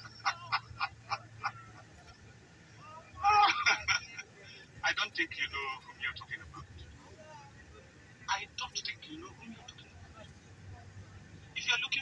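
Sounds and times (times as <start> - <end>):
person laughing on tv: 0.0 - 2.0
bus low steady drone: 0.0 - 12.0.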